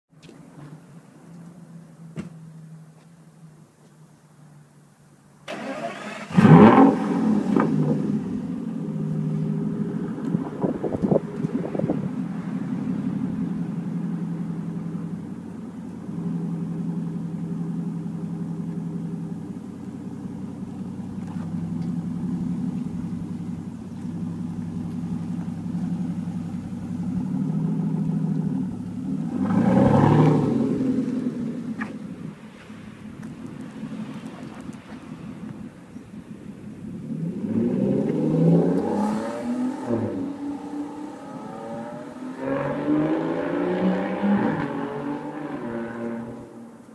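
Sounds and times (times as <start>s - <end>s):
car engine idling and revving: 0.2s - 46.9s.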